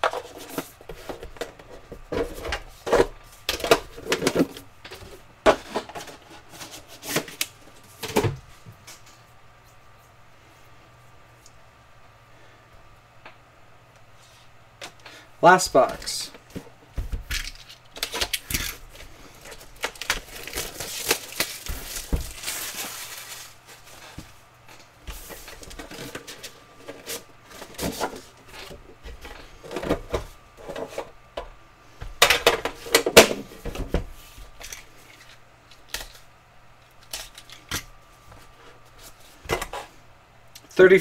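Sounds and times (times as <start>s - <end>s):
packaging rustling: 17.3s - 28.8s.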